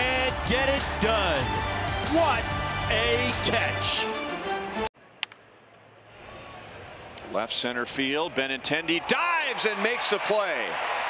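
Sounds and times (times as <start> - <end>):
faint crowd noise: 5.0 - 9.1.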